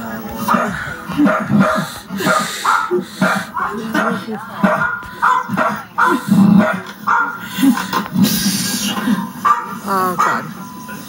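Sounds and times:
dog barking: 0.4s - 7.4s, 9.4s - 10.6s.

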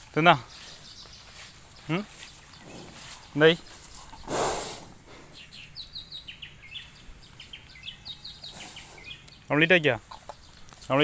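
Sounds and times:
birds chirping faintly: 0.0s - 11.0s
water buffalo exhaling: 2.4s - 5.5s, 8.4s - 9.2s.

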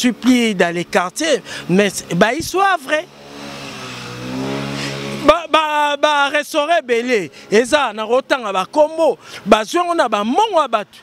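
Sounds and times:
vehicle engine accelerating: 1.0s - 9.0s.

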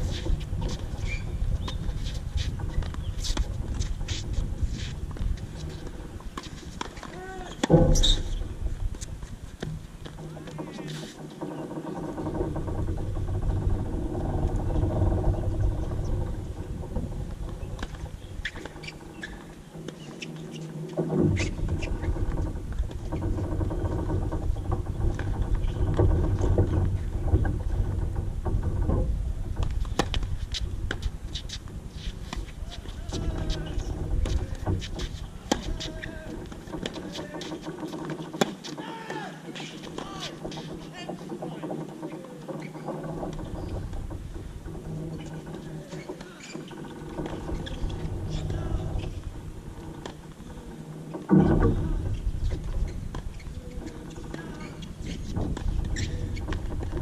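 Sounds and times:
wind rumble on microphone: 0.0s - 19.8s, 20.4s - 37.9s, 47.0s - 57.0s.

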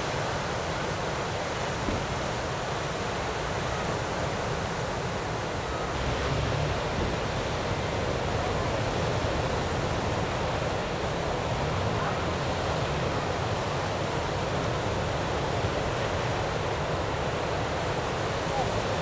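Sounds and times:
ocean surf breaking: 0.0s - 19.0s.

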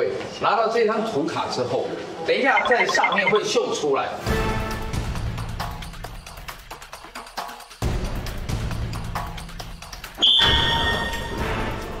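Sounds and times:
game show background music: 2.6s - 3.6s.

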